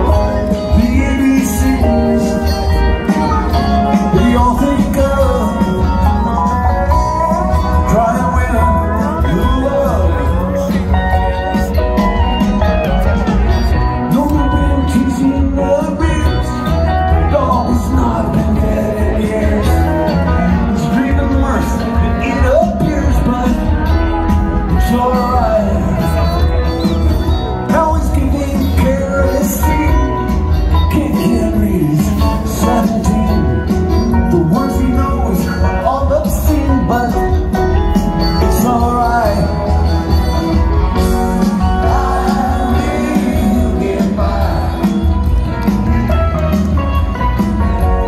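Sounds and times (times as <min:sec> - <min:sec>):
bass: 0:00.0 - 0:48.0
drums: 0:00.0 - 0:48.0
electric guitar: 0:00.0 - 0:48.0
live rock band playing: 0:00.0 - 0:48.0.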